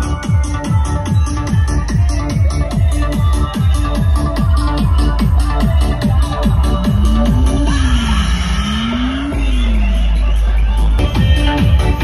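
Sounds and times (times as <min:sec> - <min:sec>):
loud electronic dance music: 0:00.0 - 0:12.0
sustained deep bass: 0:05.1 - 0:12.0.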